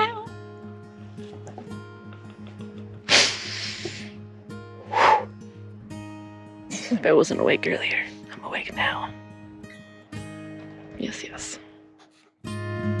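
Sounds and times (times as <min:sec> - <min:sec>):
background music: 0:00.0 - 0:13.0
woman hissing through teeth: 0:03.1 - 0:04.1, 0:04.9 - 0:05.3.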